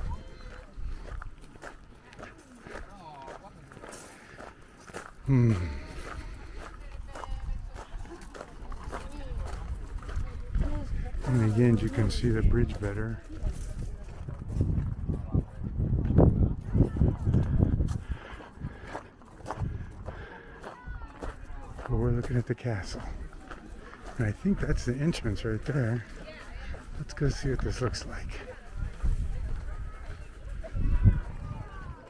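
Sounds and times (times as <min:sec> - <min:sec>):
footsteps on gravel: 0:00.0 - 0:15.3, 0:15.9 - 0:32.0
faint chatter: 0:00.0 - 0:32.0
wind buffeting microphone: 0:05.7 - 0:21.9, 0:26.0 - 0:32.0.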